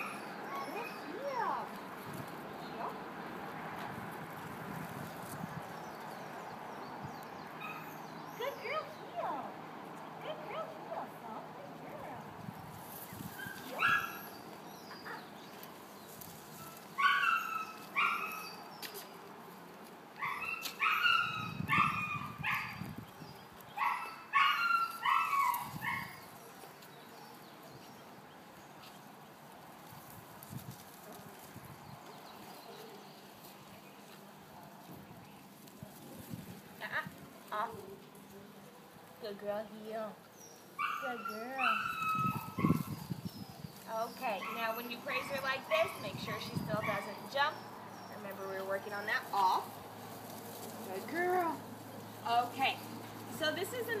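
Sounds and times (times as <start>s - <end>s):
dog barking: 40.8s - 42.9s.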